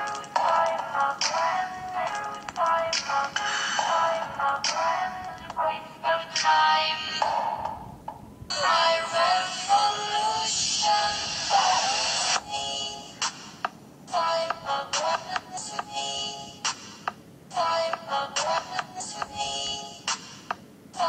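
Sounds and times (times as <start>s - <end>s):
electronic dance music: 0.0s - 7.8s, 8.5s - 13.6s.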